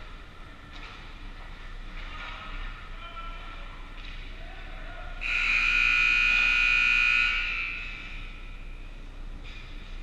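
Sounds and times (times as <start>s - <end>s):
scoreboard buzzer blast: 5.2s - 8.1s.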